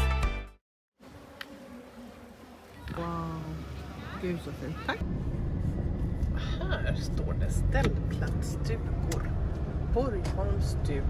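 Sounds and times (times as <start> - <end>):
flying insect buzzing: 1.0 - 4.0.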